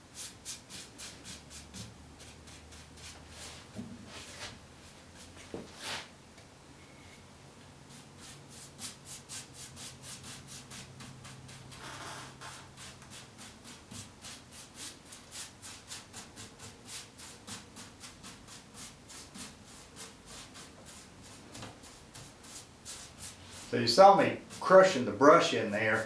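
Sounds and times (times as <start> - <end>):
paintbrush scrubbing on wood: 12.5 - 26.0.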